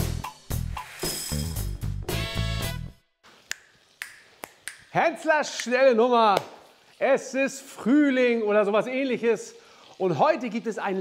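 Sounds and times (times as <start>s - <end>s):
finger snaps: 3.5s - 4.9s.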